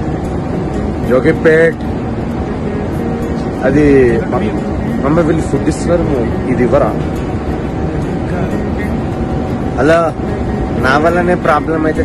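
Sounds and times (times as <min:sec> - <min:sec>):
airliner cabin drone: 0:00.0 - 0:12.0.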